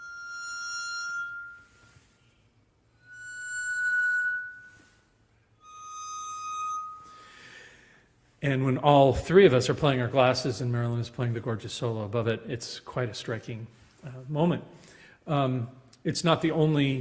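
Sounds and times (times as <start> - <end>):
bowed wine glasses ringing: 0.0 - 7.8.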